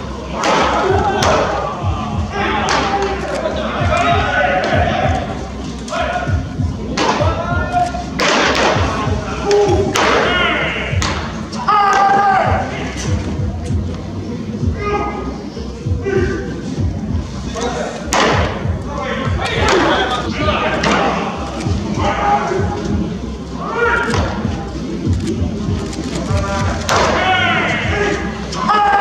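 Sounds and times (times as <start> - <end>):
players shouting: 0.0 - 13.4, 14.5 - 16.9, 17.5 - 24.7, 26.3 - 29.0
baseballs smacking into mitts: 0.4 - 1.6, 6.9 - 7.3, 8.2 - 8.9, 9.9 - 10.4, 11.0 - 11.3, 18.1 - 18.7, 19.6 - 19.9, 26.9 - 27.3.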